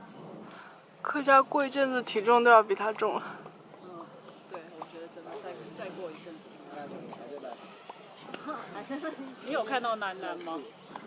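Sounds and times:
insect drone: 0:00.0 - 0:11.0.

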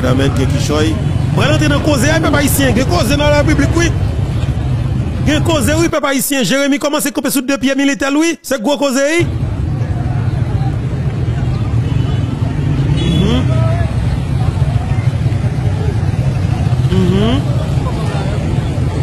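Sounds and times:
motorcycle engines rumbling: 0:00.0 - 0:06.7, 0:09.0 - 0:19.0
crowd chatter: 0:09.3 - 0:19.0
people calling out: 0:12.9 - 0:14.1, 0:16.8 - 0:17.6.

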